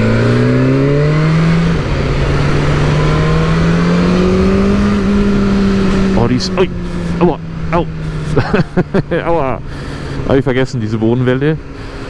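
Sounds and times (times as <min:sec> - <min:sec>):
motorcycle engine accelerating: 0:00.0 - 0:11.9.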